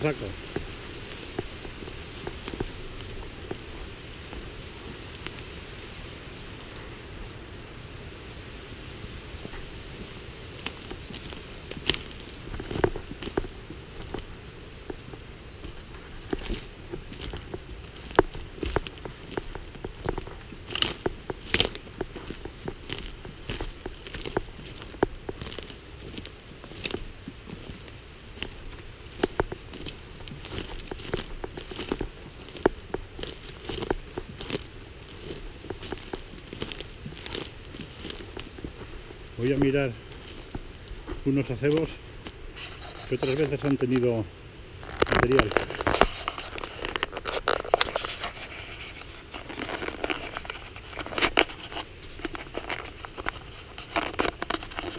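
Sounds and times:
footsteps crunching on forest litter: 0.0s - 54.9s.

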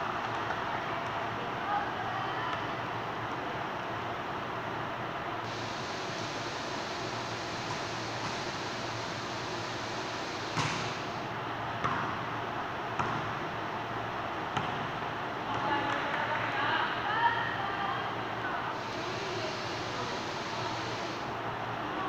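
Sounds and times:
volleyball being struck: 10.5s - 11.0s, 12.9s - 13.4s, 14.5s - 14.9s
voices: 15.4s - 22.0s.

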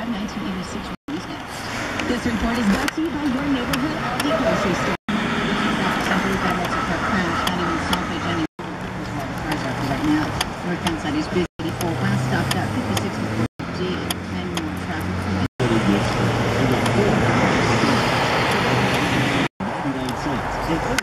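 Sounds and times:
indistinct radio talk: 0.0s - 5.0s, 5.7s - 21.0s
road traffic rushing: 0.0s - 21.0s
low engine hum: 0.1s - 21.0s.

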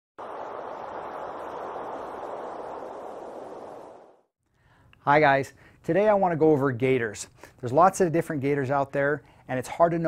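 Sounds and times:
rushing wind: 0.2s - 4.3s.

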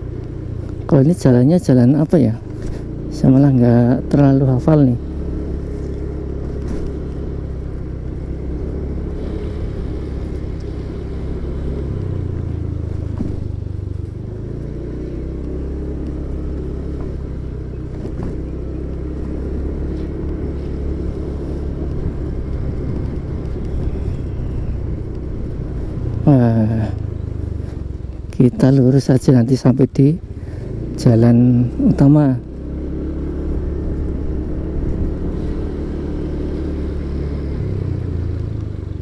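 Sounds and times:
motorcycle engine running: 0.0s - 39.0s
road and wind noise: 0.0s - 39.0s.

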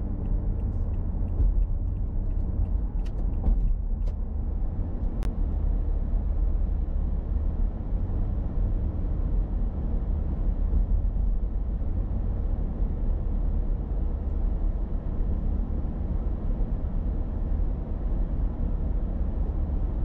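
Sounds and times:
car road and engine rumble: 0.0s - 20.0s.

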